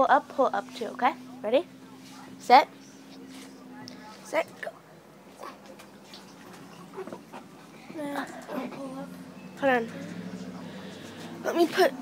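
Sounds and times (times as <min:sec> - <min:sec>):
faint knocks and rustles: 0:05.3 - 0:09.0.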